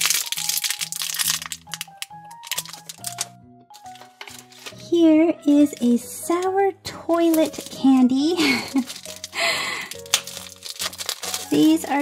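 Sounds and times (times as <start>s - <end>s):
plastic bag crinkling: 0.0s - 4.8s, 7.2s - 12.0s
background music: 0.0s - 12.0s.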